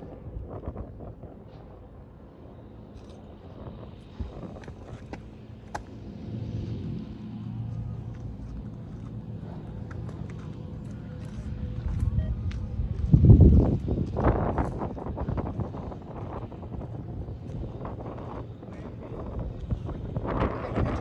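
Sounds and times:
low engine rumble: 0:00.0 - 0:21.0.

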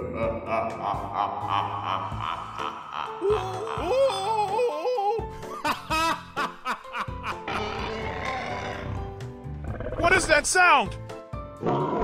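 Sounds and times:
background music: 0:00.0 - 0:12.0
cartoon characters laughing: 0:00.5 - 0:08.6.

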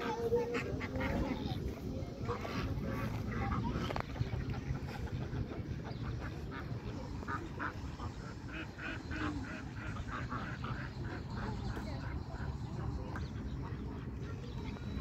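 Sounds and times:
ducks and geese quacking: 0:00.0 - 0:15.0.

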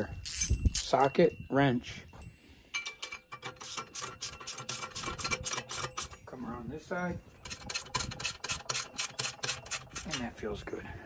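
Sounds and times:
ratchet wrench clicking: 0:00.2 - 0:00.9, 0:02.8 - 0:06.2.

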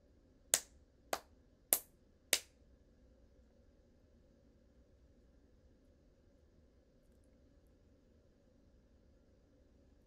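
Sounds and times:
hand snaps: 0:00.5 - 0:02.6.

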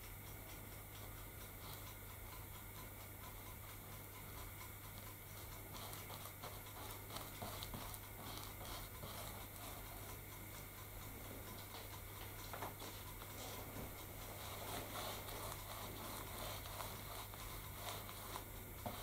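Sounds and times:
paintbrush scratchy strokes: 0:05.3 - 0:10.2, 0:11.2 - 0:19.0.

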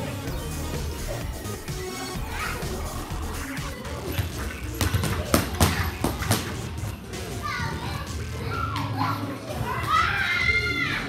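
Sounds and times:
children's voices calling out: 0:01.8 - 0:06.2, 0:07.0 - 0:11.0.

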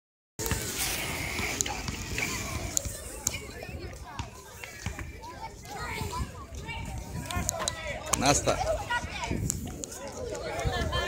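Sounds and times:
people talking: 0:00.4 - 0:11.0.

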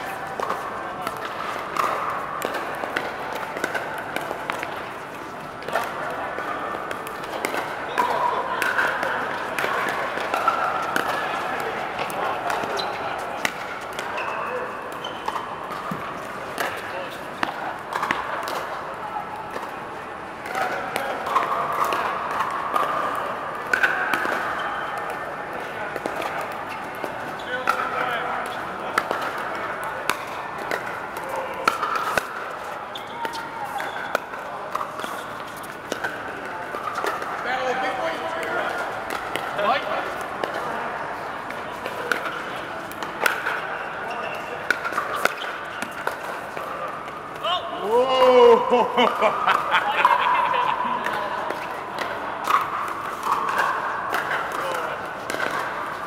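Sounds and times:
paddles hitting plastic balls: 0:00.1 - 0:18.8, 0:19.4 - 0:40.8, 0:44.5 - 0:47.5, 0:50.9 - 0:56.0.

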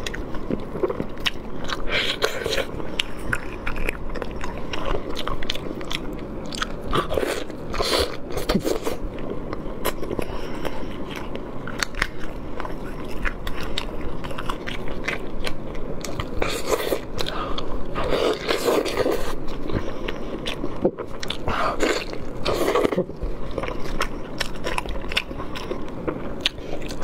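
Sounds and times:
person chewing with mouth clicks: 0:00.0 - 0:27.0.

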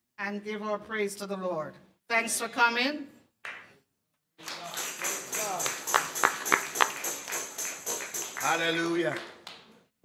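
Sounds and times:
tambourine jingling: 0:04.7 - 0:08.9.

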